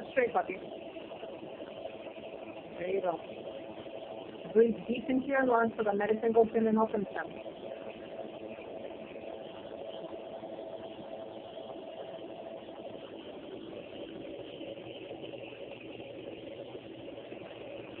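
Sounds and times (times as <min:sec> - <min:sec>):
air compressor motor hum: 0:00.0 - 0:18.0.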